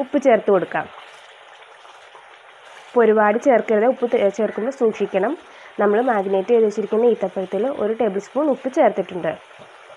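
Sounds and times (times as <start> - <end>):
pickle mixture simmering in pan: 0.0 - 9.9.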